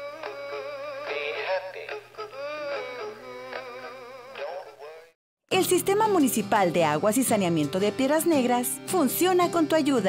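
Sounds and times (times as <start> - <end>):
toy singing through small speaker: 0.0 - 5.1.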